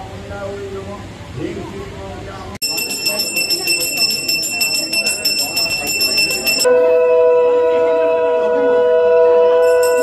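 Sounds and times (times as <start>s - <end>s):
handbell rung rapidly: 2.6s - 6.7s, 9.6s - 10.0s
steady multi-pitch ringing tone: 2.6s - 7.8s, 9.6s - 10.0s.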